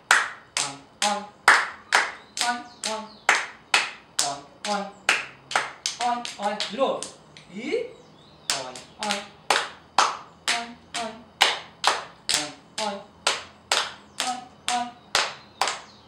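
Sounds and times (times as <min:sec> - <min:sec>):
hands clapping rhythm: 0:00.0 - 0:07.5, 0:08.5 - 0:16.0.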